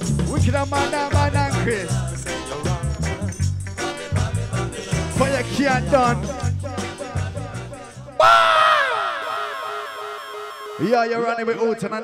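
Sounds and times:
reggae record playing: 0.0s - 8.2s
man shouting into microphone: 5.2s - 6.5s, 8.2s - 12.0s.

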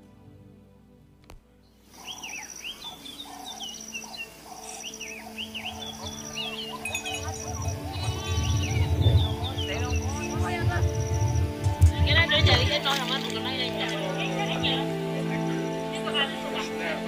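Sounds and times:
soft music with low bass: 0.0s - 17.0s
high chirping calls: 1.8s - 17.0s.

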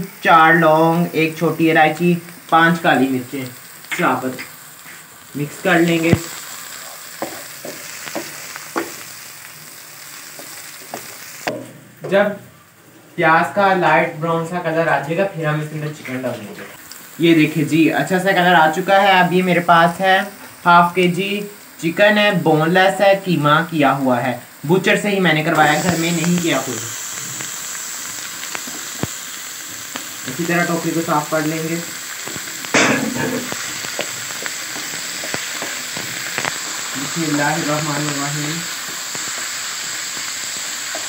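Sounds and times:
onions sizzling in oil: 0.0s - 12.6s, 13.2s - 41.0s.

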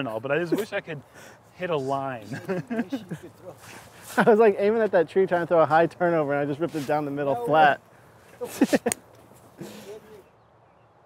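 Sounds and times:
person laughing: 2.2s - 3.4s, 8.3s - 9.0s, 9.6s - 10.2s.

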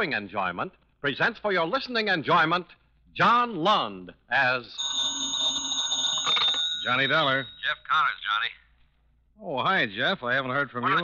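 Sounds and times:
telephone bell ringing: 4.8s - 7.8s.

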